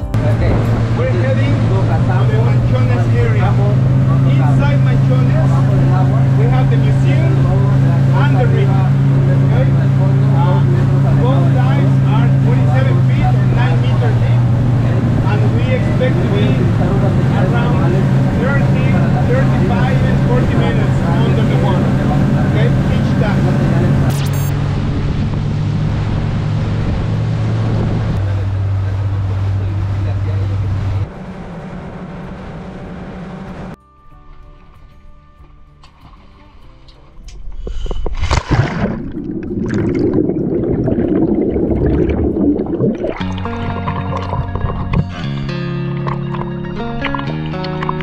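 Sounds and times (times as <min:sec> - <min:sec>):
motorboat engine humming: 0:00.0 - 0:33.8, 0:34.9 - 0:48.0
man talking: 0:00.1 - 0:24.5, 0:28.2 - 0:31.1.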